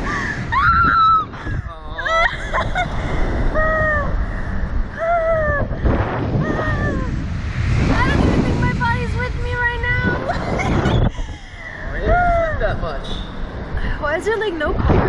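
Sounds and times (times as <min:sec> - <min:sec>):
wind rushing over microphone: 0:00.0 - 0:15.0
people shrieking and laughing: 0:00.2 - 0:04.3, 0:04.9 - 0:05.8, 0:06.4 - 0:07.2.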